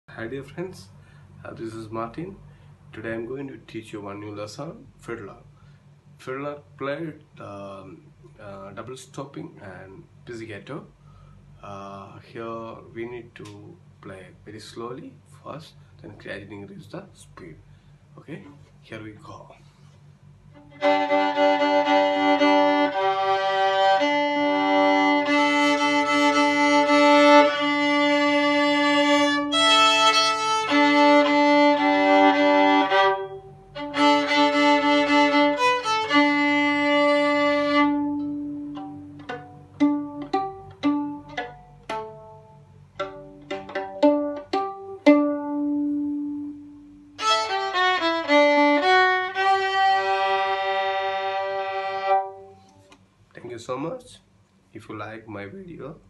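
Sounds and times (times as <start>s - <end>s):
solo violin playing: 20.5s - 52.7s.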